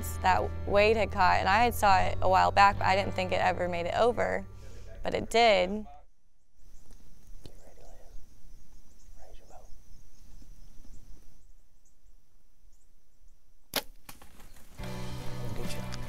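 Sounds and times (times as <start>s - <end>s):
music: 0.0s - 5.8s, 14.8s - 16.0s
bow string crack: 13.7s - 14.7s.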